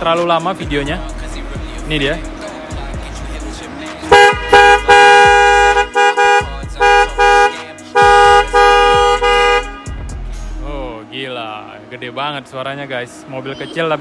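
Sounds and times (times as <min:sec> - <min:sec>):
dual-tone car horn blasts: 0:04.0 - 0:10.2.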